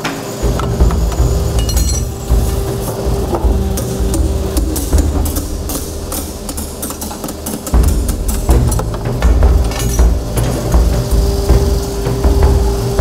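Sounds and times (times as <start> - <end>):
lathe machine hum: 0.0 - 13.0.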